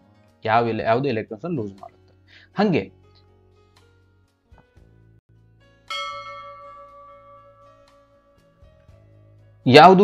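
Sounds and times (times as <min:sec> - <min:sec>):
soft background music: 0:00.0 - 0:10.0
bell-like chime ringing: 0:05.9 - 0:08.8.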